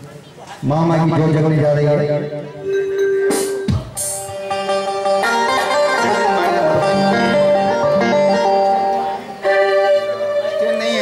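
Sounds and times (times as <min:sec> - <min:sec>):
electronic keyboard melody: 0:01.1 - 0:11.0.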